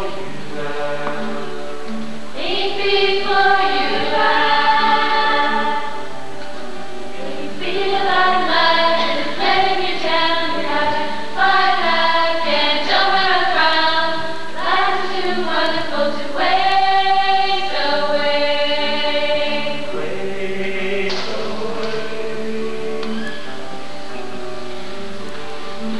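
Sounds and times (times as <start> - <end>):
group of voices singing: 0.0 - 6.2, 7.1 - 23.6.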